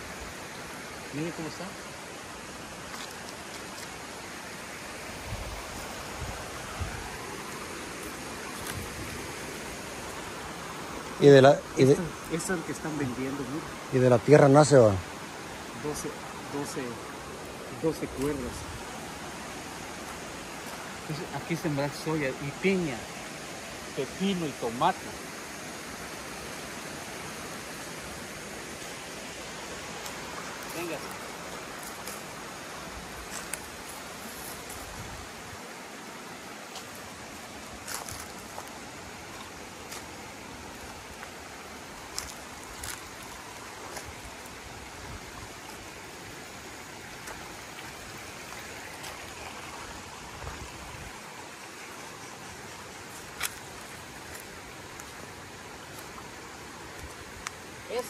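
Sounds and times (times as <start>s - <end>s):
river water flowing: 0.0s - 58.0s
footsteps on dry leaves: 37.6s - 40.3s, 41.1s - 44.3s.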